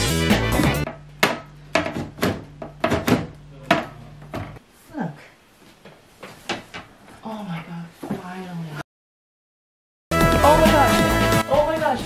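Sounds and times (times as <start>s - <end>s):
panel knocking against pc case: 0.9s - 4.6s.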